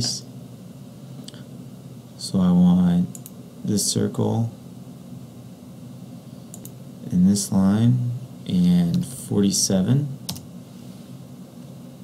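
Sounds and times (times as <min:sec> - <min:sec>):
quiet low steady hum: 0:00.0 - 0:12.0.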